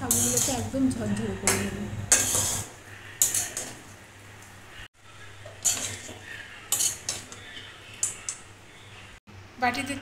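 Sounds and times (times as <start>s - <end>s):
spoon scraping metal bowl: 0.0s - 0.7s, 1.5s - 3.8s, 5.4s - 8.4s.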